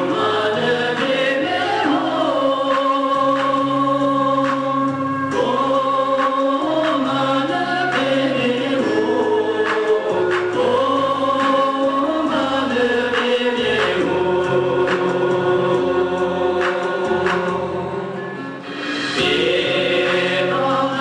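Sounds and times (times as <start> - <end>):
male group singing in harmony: 0.0 - 21.0.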